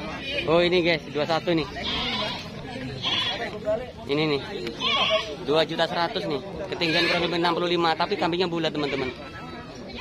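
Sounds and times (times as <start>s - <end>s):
goats bleating: 1.8s - 3.6s, 4.8s - 5.4s, 6.7s - 7.6s.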